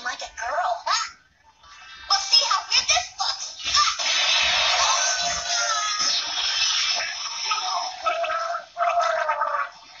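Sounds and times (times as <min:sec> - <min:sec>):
cartoon voice gurgling underwater: 0:07.5 - 0:10.0.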